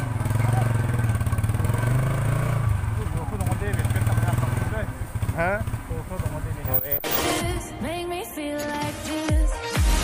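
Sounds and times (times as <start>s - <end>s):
motorcycle engine running: 0.0s - 7.8s.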